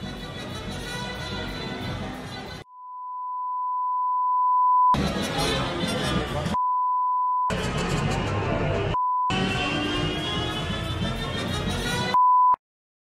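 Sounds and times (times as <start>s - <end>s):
music: 0.0s - 2.6s, 5.0s - 6.6s, 7.5s - 12.2s.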